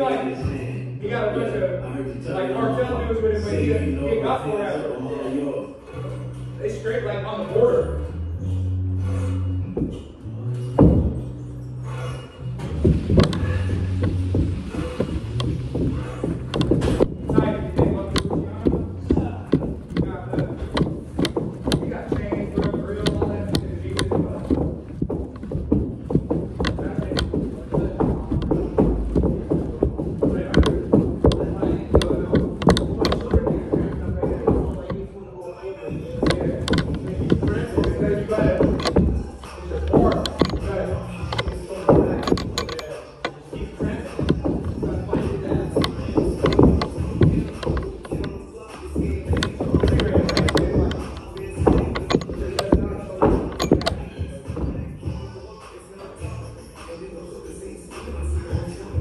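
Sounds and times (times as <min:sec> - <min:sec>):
rope slapping carpeted floor: 0:12.8 - 0:34.8.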